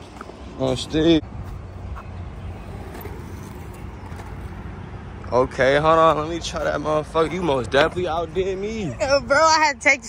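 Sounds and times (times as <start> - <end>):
skateboard wheels rolling on concrete: 0.0 - 8.9.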